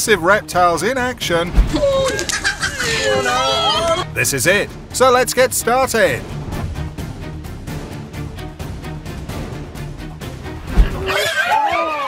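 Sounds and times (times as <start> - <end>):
background music: 0.0 - 12.0
animal squealing: 1.7 - 4.0, 10.9 - 12.0
sharp thud: 10.7 - 11.0.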